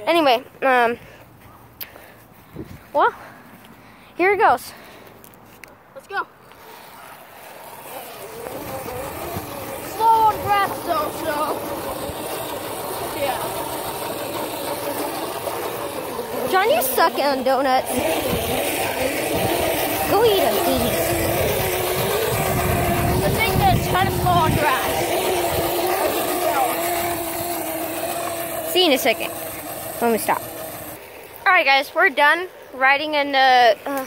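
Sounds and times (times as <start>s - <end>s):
electric scooter motor whining: 6.4s - 31.7s
low rumbling noise: 17.8s - 31.0s.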